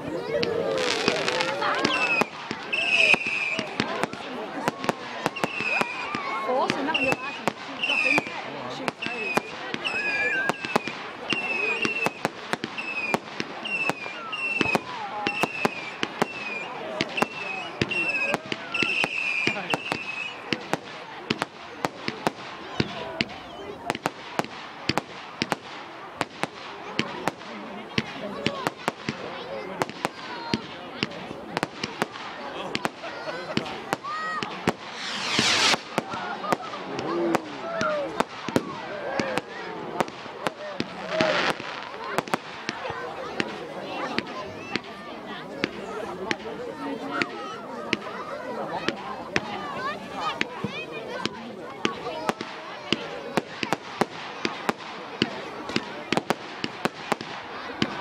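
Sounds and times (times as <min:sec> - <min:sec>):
fireworks bangs and crackles: 0:00.0 - 0:58.0
firework hissing whistle: 0:01.9 - 0:03.8, 0:05.3 - 0:06.1, 0:12.8 - 0:20.4, 0:34.7 - 0:36.4.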